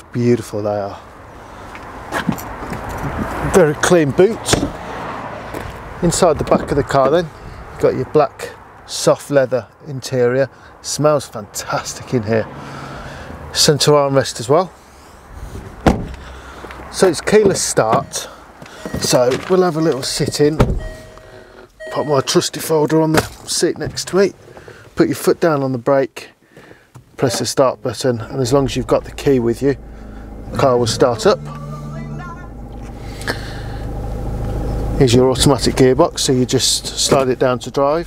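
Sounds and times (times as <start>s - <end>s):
car door shutting: 15.6s - 16.3s, 17.3s - 22.2s
diesel engine idling: 28.1s - 38.0s.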